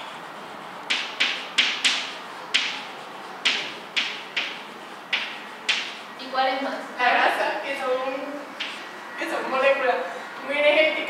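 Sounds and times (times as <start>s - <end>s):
chalk tapping and scratching: 0.0s - 6.1s.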